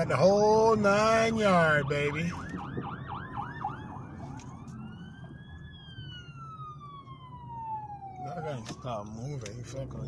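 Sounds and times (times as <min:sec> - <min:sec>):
fire truck siren: 0:00.0 - 0:10.0.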